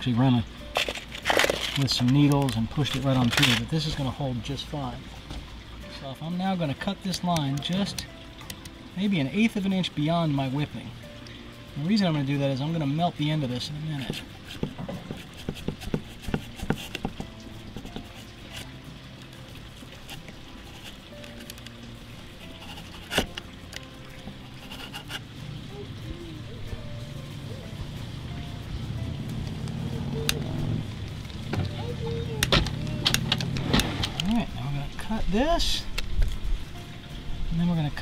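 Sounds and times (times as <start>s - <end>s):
background music: 0.0s - 38.0s.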